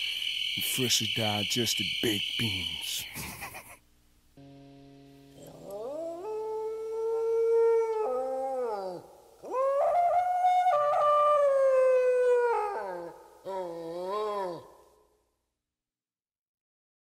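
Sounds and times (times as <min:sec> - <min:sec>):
faint low hum: 0:00.0 - 0:15.1
wolf-like howls: 0:05.4 - 0:14.8.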